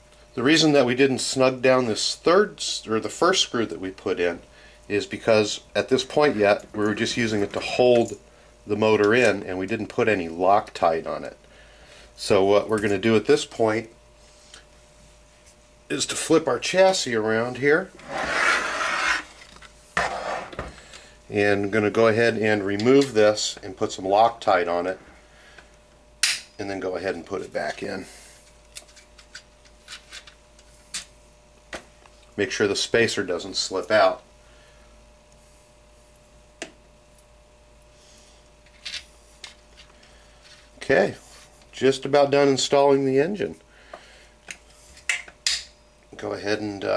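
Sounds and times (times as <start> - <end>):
faint steady hum: 0.0 - 46.9
rasping rub on work surface: 18.0 - 19.4, 20.0 - 20.6.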